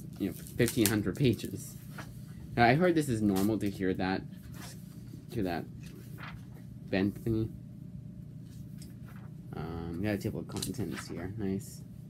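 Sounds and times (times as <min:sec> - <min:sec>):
low room hum: 0:00.0 - 0:12.0
book pages rustling: 0:00.1 - 0:02.3, 0:04.4 - 0:06.7, 0:08.4 - 0:09.4
man speaking: 0:02.6 - 0:04.7, 0:09.5 - 0:11.9.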